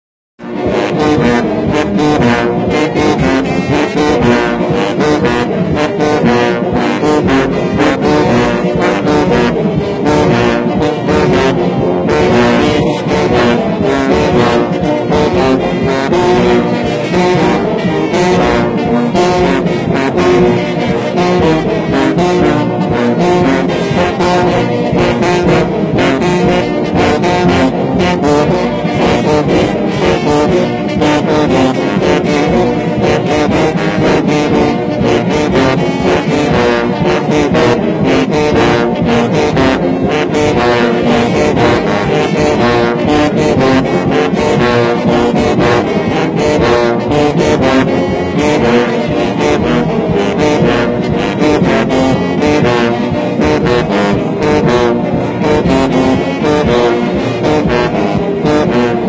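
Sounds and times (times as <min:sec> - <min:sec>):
brass band playing: 0:00.4 - 0:59.0
sousaphone bass lines: 0:00.4 - 0:59.0.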